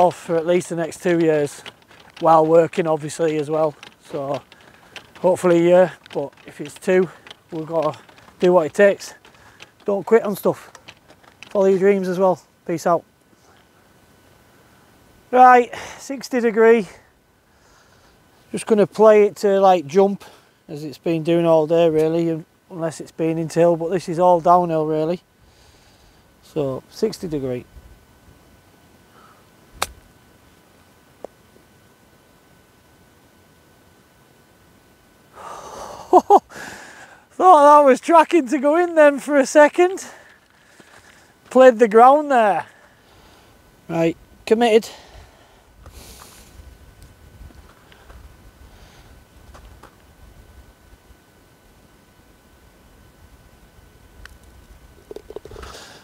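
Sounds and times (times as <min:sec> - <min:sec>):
golf club striking ball: 0:29.8 - 0:30.0.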